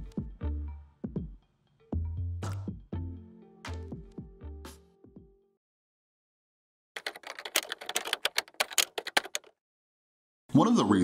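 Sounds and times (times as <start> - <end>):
typewriter key clacks: 7.0 - 9.5.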